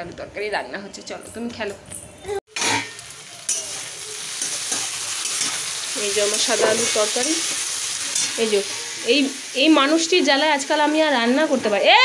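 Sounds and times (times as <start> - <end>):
potatoes sizzling in oil: 2.5 - 12.0.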